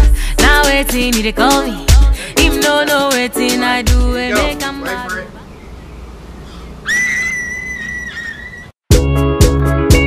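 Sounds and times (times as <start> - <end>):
loud music with heavy beat: 0.0 - 5.0
long high whistle: 6.9 - 8.6.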